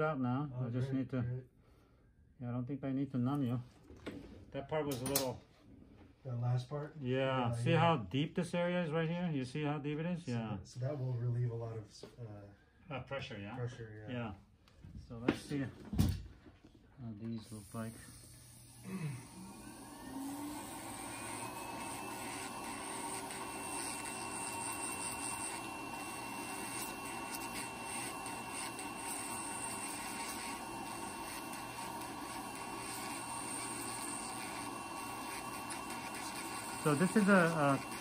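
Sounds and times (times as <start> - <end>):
drill burr grinding toenail: 17.4 - 38.0
electric nail drill whining: 17.4 - 38.0.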